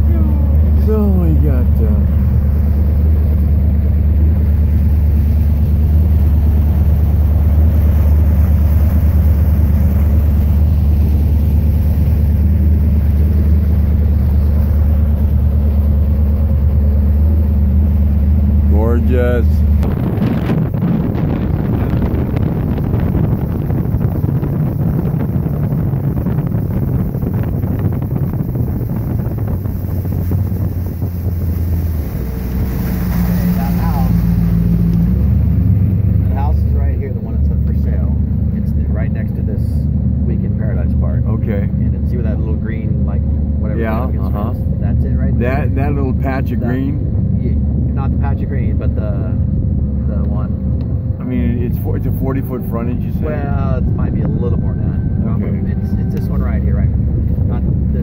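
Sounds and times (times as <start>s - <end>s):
wind noise on microphone: 0.0s - 36.2s, 45.4s - 58.0s
boat motor running: 0.0s - 58.0s.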